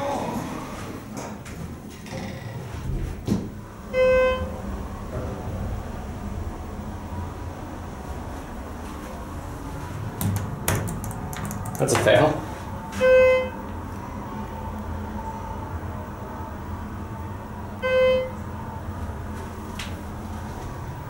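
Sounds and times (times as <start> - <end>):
elevator hum: 0.0 - 21.0
short electronic beep: 17.8 - 18.4.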